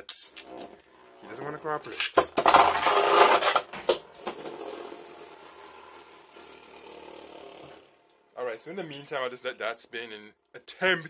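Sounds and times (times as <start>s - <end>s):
spinning top scraping hum: 0.4s - 9.5s.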